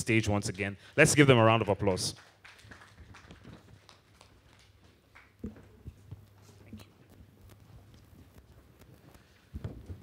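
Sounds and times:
faint scattered applause: 1.4s - 5.8s.

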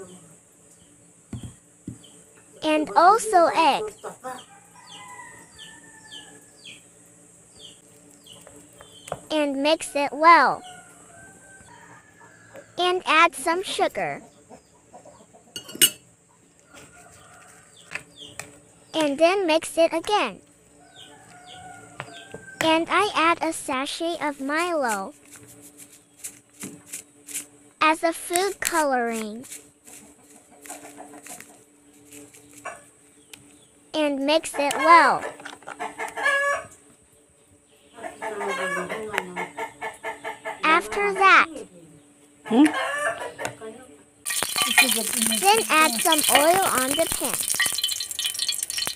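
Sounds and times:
chicken clucking: 14.2s - 15.6s, 34.6s - 36.8s, 38.0s - 40.7s, 42.5s - 43.6s
metal spoon clinking on ceramic bowl: 15.6s - 16.0s, 44.3s - 45.4s, 47.4s - 48.9s.

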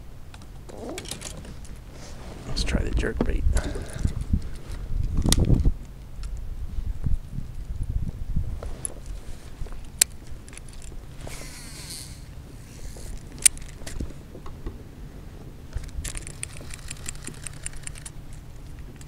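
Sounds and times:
rustle: 0.0s - 19.0s
steady low rumble: 0.0s - 19.0s
gear clicks and knocks: 0.3s - 1.8s, 8.8s - 12.2s, 12.8s - 14.6s, 15.7s - 19.0s.

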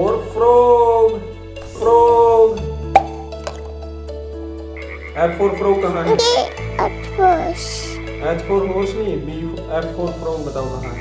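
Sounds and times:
frog croaking: 4.7s - 5.3s.

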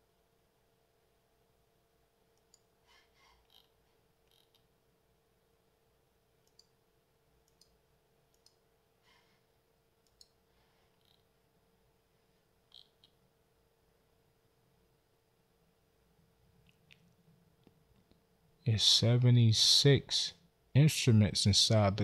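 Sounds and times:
faint steady hum: 0.0s - 22.0s
faint computer mouse clicks: 2.4s - 2.7s, 6.4s - 6.8s, 7.4s - 8.6s, 10.0s - 10.4s.

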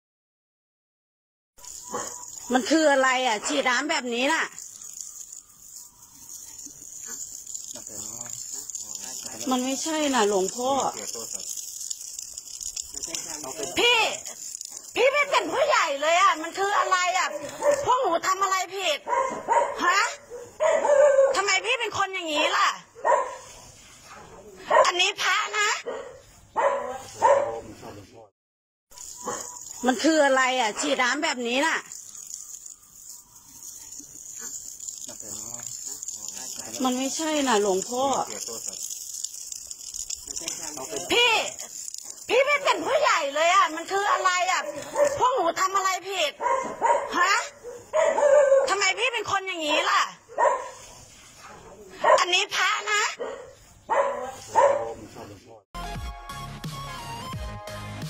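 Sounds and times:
dog barking: 1.6s - 2.7s, 8.1s - 9.8s, 16.4s - 18.1s, 18.9s - 27.7s, 29.0s - 29.8s, 35.7s - 37.0s, 41.5s - 45.4s, 46.2s - 49.2s, 49.9s - 55.3s.

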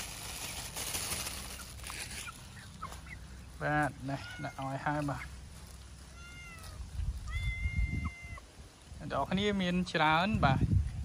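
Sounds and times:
cat meowing: 4.0s - 5.0s, 6.0s - 8.5s.

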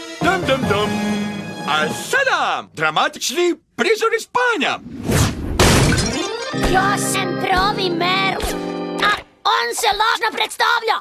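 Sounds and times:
cartoon crash smashing and shattering: 5.0s - 6.9s.

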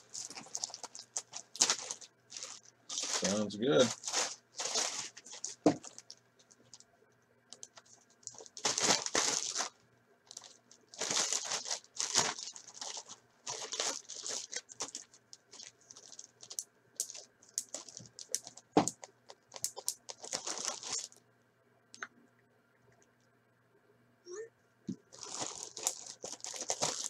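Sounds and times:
plastic bag crinkling: 0.0s - 6.8s, 7.5s - 21.2s, 25.1s - 27.0s.

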